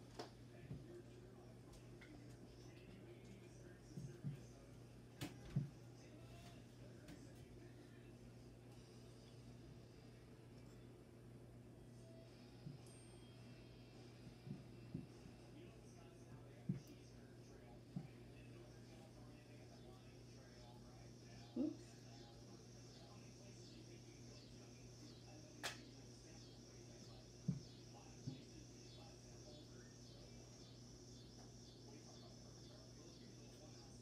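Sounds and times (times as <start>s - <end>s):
low room hum: 0.0s - 34.0s.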